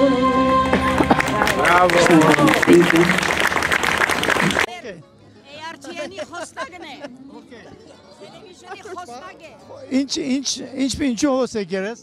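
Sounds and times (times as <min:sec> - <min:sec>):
musical accompaniment: 0:00.0 - 0:04.7
audience applause: 0:00.7 - 0:04.7.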